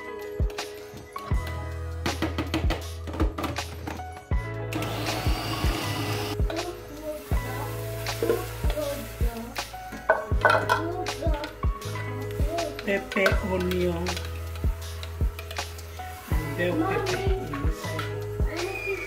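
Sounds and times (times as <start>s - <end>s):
background music with steady beat: 0.0s - 19.0s
food processor whining: 4.7s - 6.4s.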